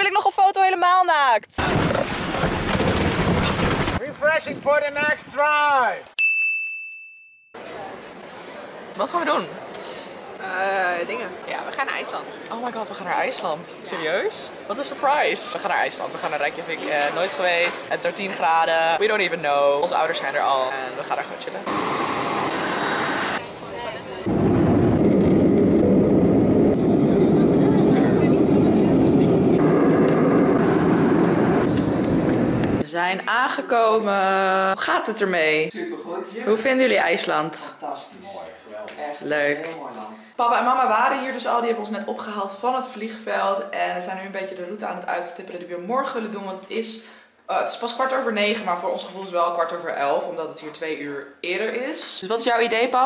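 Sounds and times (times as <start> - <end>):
bright bell ding: 6.2 - 7.6
jet engines inside airplane cabin: 21.7 - 32.8.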